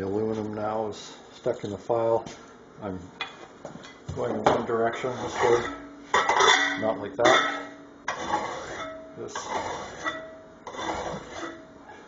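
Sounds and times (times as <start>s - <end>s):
hand file rasping on metal: 5.0s - 5.7s, 8.1s - 11.6s.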